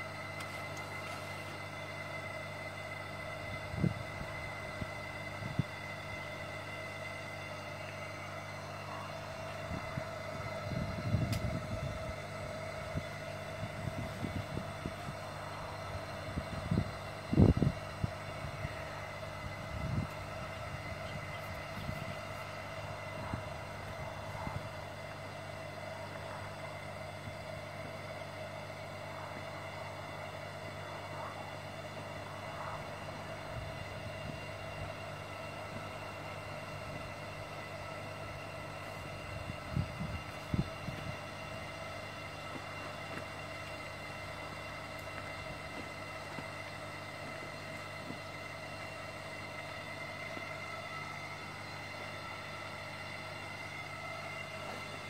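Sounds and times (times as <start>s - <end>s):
air pumps running: 0.0s - 55.0s
mains hum: 0.0s - 55.0s.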